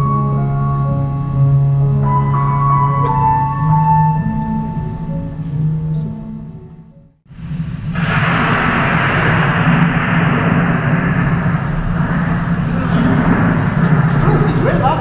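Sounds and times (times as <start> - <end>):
low rumble: 7.3 - 15.0
rain and wind: 7.3 - 15.0
rising sound effect: 7.6 - 15.0.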